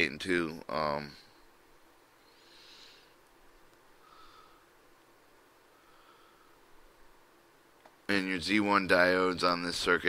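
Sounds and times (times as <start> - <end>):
faint soft hiss: 0.0 - 10.0.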